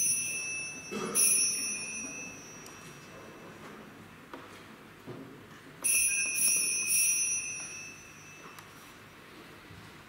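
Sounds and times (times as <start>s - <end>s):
altar bells ringing: 0.0s - 3.6s, 5.8s - 9.0s.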